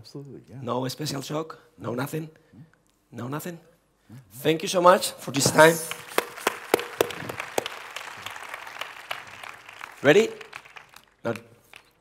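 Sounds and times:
audience applause: 5.6 - 12.0.

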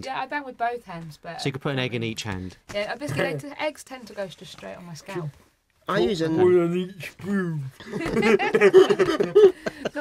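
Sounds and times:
people laughing: 7.8 - 10.0.

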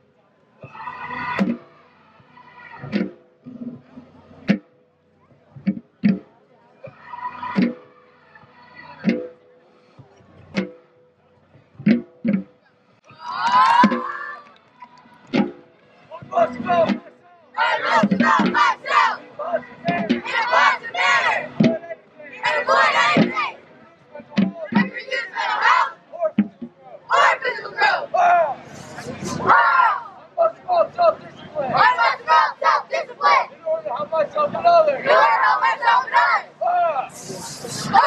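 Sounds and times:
students shouting in unison: 0.7 - 3.0, 6.9 - 9.0, 13.1 - 14.4, 17.6 - 21.6, 22.4 - 23.6, 24.8 - 26.0, 27.1 - 30.2, 31.7 - 33.5, 34.8 - 37.0.

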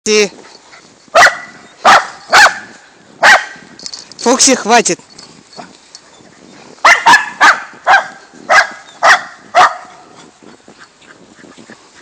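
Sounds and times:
dog barking: 1.1 - 3.6, 6.8 - 10.2.

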